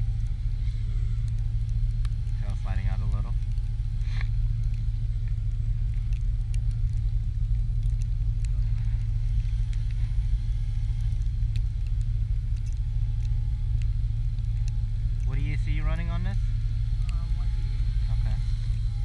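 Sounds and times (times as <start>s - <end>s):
small electric helicopter whine: 0.0s - 19.0s.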